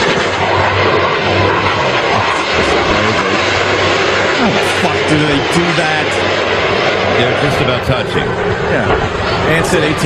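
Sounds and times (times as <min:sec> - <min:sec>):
jet aircraft flying past: 0:00.0 - 0:10.0
low hum: 0:00.0 - 0:10.0.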